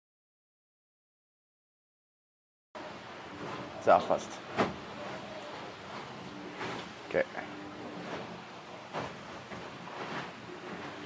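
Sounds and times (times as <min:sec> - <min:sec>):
yacht cabin noise under way: 0:02.8 - 0:11.0.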